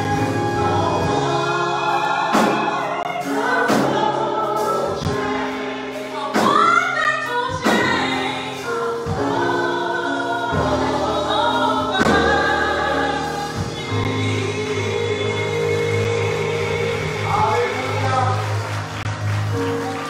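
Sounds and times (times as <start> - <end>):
group gospel singing: 0.0 - 20.0
held instrumental chords: 0.0 - 20.0.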